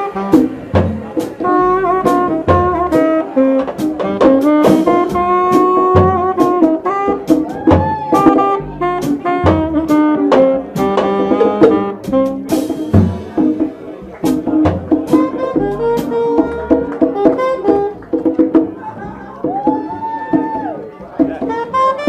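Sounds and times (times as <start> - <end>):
drums with cymbal and snare: 0.0 - 22.0
saxophone melody: 0.0 - 22.0
walking double bass: 0.0 - 22.0.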